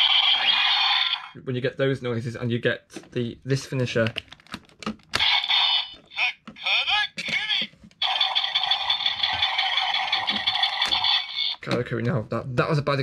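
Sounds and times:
toy electronic voice calls: 0.0 - 1.4, 5.2 - 11.6
toy sound effects: 0.0 - 1.4, 5.2 - 11.6.

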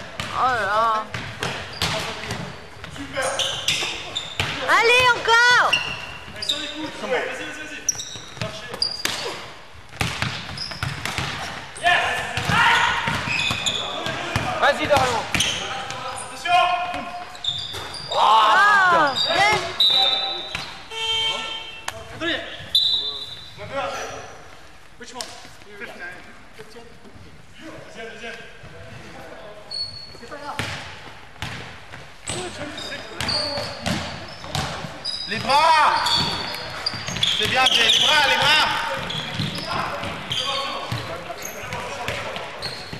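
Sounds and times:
basketball bouncing on wooden floor: 0.1 - 3.0, 38.4 - 41.1
players shouting: 18.0 - 19.8.

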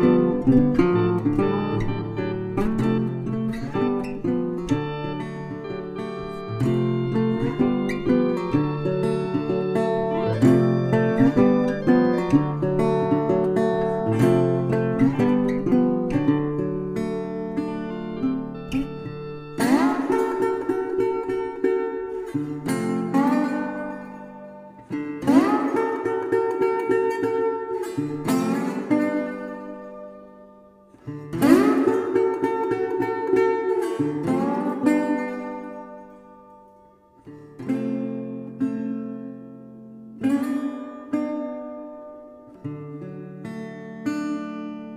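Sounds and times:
acoustic guitar picked notes: 0.0 - 44.9
acoustic guitar strummed chords: 0.0 - 44.9.

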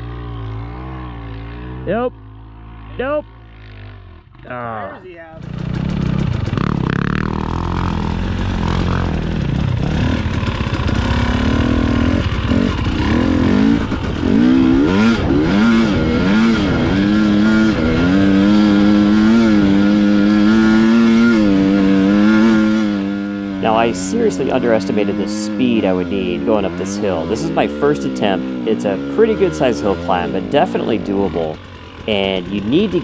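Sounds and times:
motorcycle engine revving: 0.0 - 33.0.

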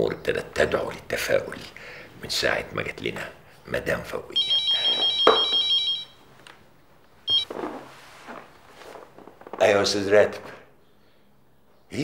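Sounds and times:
phone ringtone: 4.4 - 6.2, 7.3 - 7.5.

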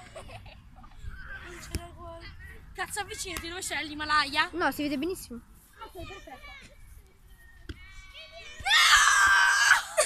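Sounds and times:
girl screaming in excitement: 8.6 - 10.0.

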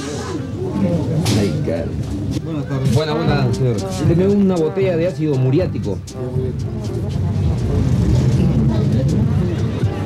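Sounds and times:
indistinct talking: 0.0 - 10.0
steady low rumble: 3.4 - 10.0.

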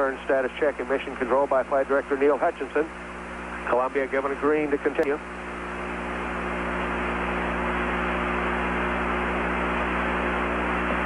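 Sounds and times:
low mains hum: 0.0 - 11.0
radio channel hiss: 0.0 - 11.0.

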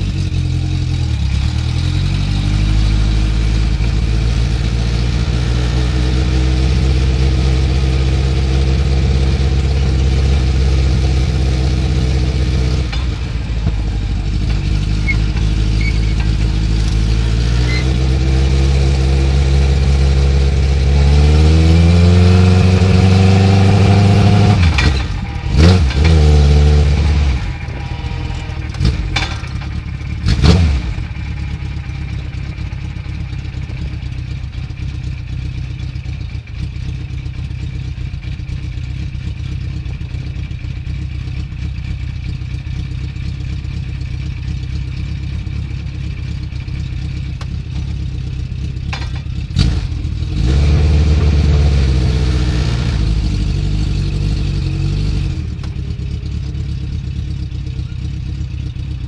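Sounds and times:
race car engine revving and idling: 0.0 - 59.0.

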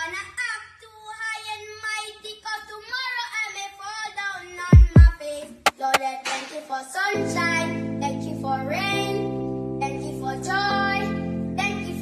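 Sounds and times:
high child-like singing voice: 0.0 - 12.0.

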